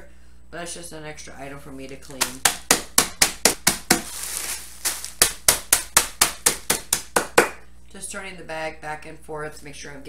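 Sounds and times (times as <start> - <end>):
plastic bag rustling: 1.8 - 6.9
rolling pin whacking crackers in bag: 1.9 - 7.4.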